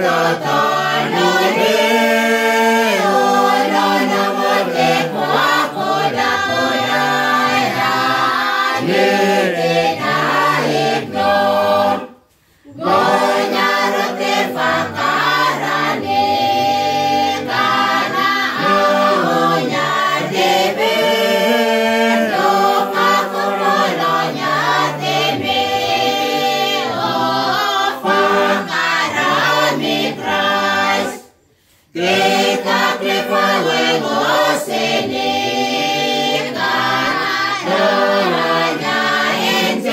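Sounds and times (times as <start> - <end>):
group singing unaccompanied carol: 0.0 - 39.9.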